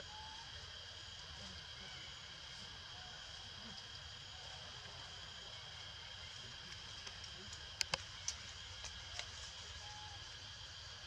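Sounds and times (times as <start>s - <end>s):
faint outdoor background: 0.0s - 11.0s
steady high-pitched hum: 0.0s - 11.0s.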